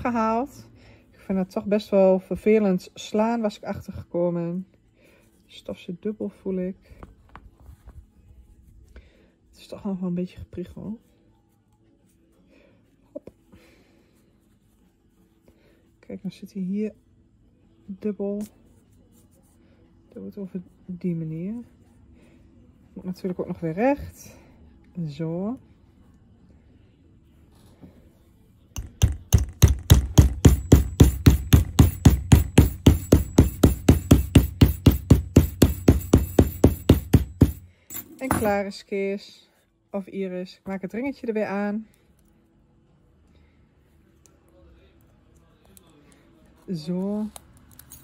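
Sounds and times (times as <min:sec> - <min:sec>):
hammer tapping metal: 0:28.8 - 0:38.6.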